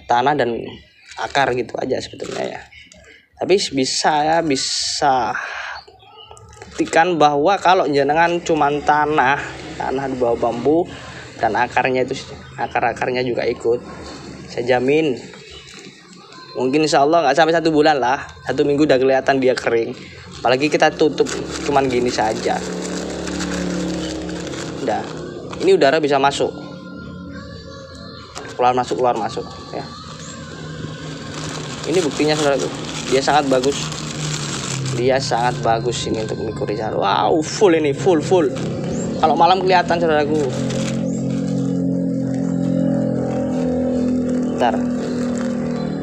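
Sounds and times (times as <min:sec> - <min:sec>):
vehicle engine running: 0:20.0 - 0:46.0.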